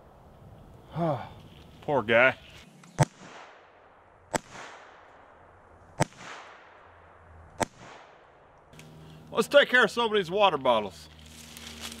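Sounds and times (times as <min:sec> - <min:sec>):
rifle shots with echo: 0:03.0 - 0:05.4, 0:06.0 - 0:08.6.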